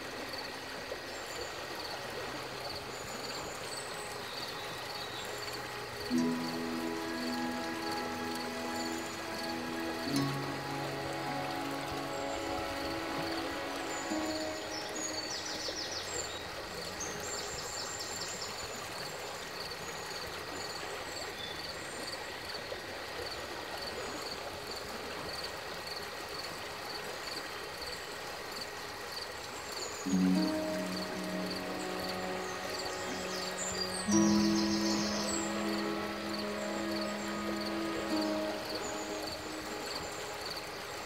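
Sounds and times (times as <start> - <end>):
soft sustained music notes: 0.0 - 41.0
stream flowing: 0.0 - 41.0.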